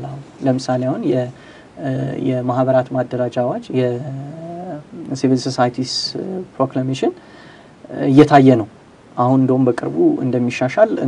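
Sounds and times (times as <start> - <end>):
man talking: 0.0 - 7.2, 7.8 - 11.0.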